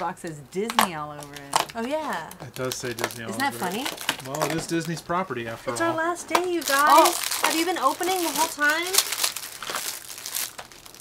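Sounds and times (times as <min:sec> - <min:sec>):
plastic bag snap: 0:00.6 - 0:05.0, 0:06.3 - 0:11.0
plastic bags crinkling: 0:00.7 - 0:05.5, 0:06.2 - 0:11.0.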